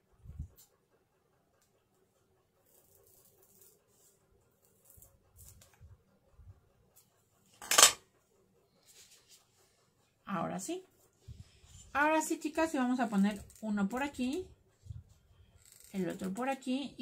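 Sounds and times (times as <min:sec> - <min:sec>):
scissors snipping foam: 0:02.6 - 0:03.8.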